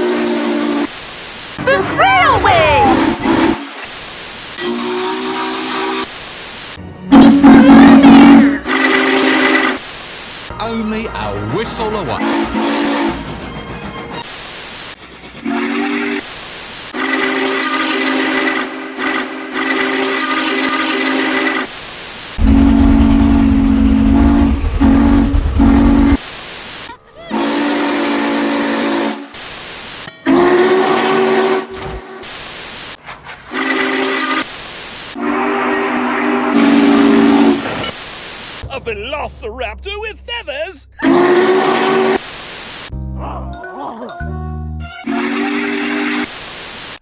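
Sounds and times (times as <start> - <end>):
steam locomotive whistle blasts: 0.0 - 0.9, 1.7 - 3.8, 4.6 - 6.2, 7.1 - 9.8, 12.2 - 13.2, 15.4 - 21.7, 22.4 - 26.2, 27.3 - 29.4, 30.2 - 31.8, 33.5 - 37.9, 41.0 - 42.3, 45.0 - 46.3
static hiss bursts: 3.6 - 4.6, 6.0 - 6.8, 9.8 - 10.5, 21.7 - 22.4, 26.2 - 26.9, 29.4 - 30.1, 32.2 - 33.0, 34.4 - 35.2, 37.7 - 38.6, 42.2 - 42.9, 46.2 - 47.0.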